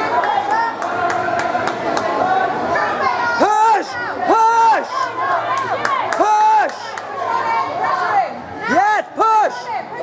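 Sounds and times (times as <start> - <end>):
spectators shouting: 0.0 - 10.0.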